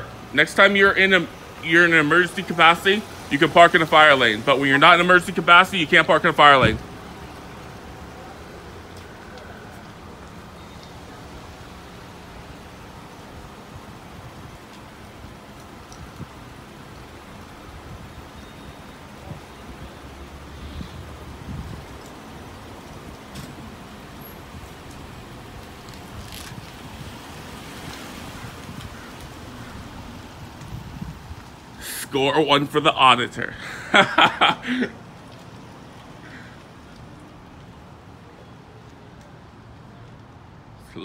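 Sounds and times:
outdoor background noise: 0.0s - 41.0s.

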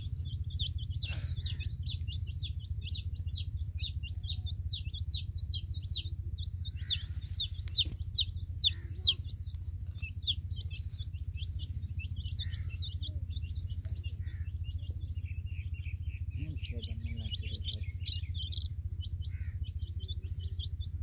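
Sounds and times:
baby chicks peeping: 0.0s - 21.0s
steady low hum: 0.0s - 21.0s.

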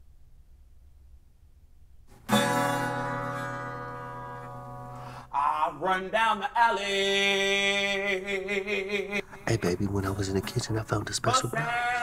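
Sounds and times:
acoustic guitar chord strummed: 2.1s - 5.3s.

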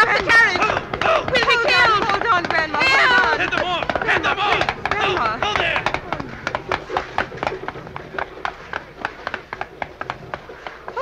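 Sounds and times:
horses galloping hoofbeats: 0.0s - 11.0s.

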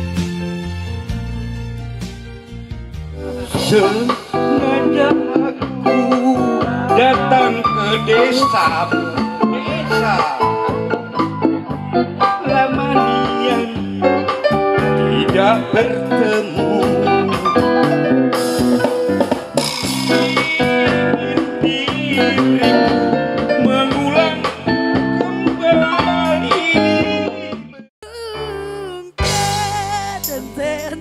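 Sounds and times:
electric keyboard: 0.0s - 27.7s
electric guitar: 3.0s - 27.7s
man singing into microphone: 3.4s - 10.8s, 11.7s - 14.4s, 15.0s - 17.3s, 20.1s - 31.0s.

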